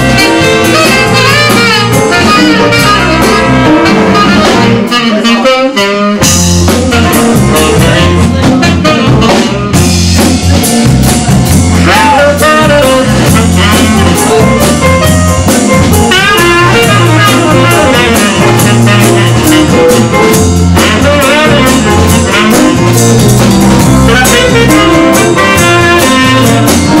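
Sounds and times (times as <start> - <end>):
saxophone solo: 0.0 - 10.8, 11.5 - 27.0
bass line: 0.0 - 27.0
drum kit: 0.0 - 27.0
electric guitar: 0.0 - 27.0.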